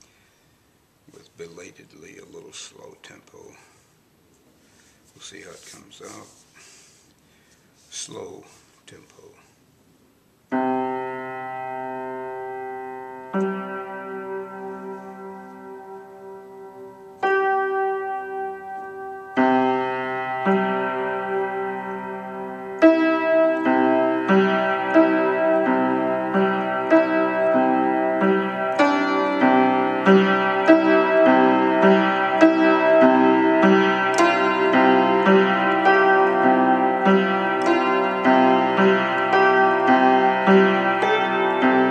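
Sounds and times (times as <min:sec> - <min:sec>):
out of tune piano played slowly: 0:10.4 - 0:41.9.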